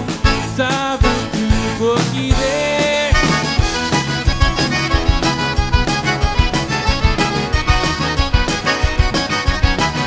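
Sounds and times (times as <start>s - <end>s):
bass guitar: 0.0s - 10.0s
button accordion lead: 0.0s - 10.0s
drum kit dance beat: 0.0s - 10.0s
electric guitar: 0.0s - 10.0s.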